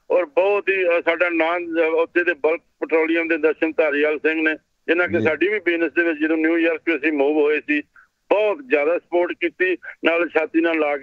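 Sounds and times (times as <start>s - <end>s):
man talking: 0.1s - 11.0s.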